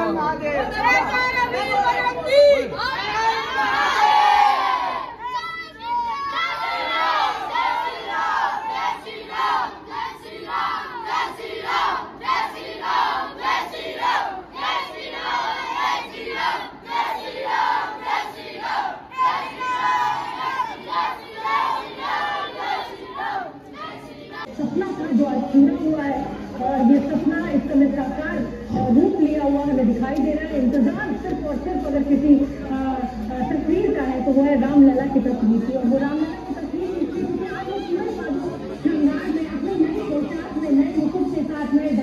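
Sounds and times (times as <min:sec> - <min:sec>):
boys shouting and cheering: 0:00.4 - 0:24.5.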